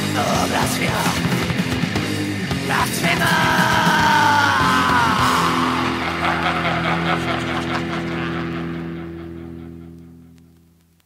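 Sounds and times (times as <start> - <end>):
distorted guitar and bass chord: 0.0 - 10.8.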